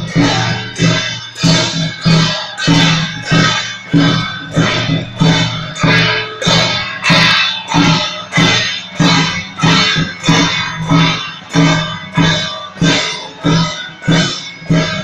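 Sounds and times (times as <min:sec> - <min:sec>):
drum beating: 0:00.0 - 0:15.0
gongs and cymbals striking: 0:00.0 - 0:15.0.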